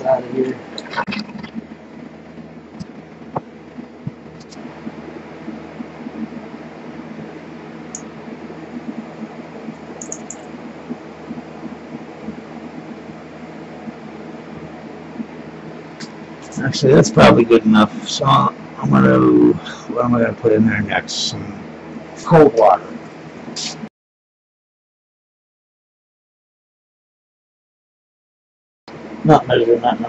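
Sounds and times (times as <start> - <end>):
steady background hum: 0.0 - 23.9, 28.9 - 30.0.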